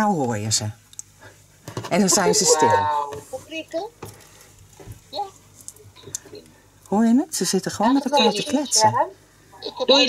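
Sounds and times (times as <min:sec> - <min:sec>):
people chatting through a speaker: 0:01.8 - 0:03.9, 0:07.4 - 0:10.0.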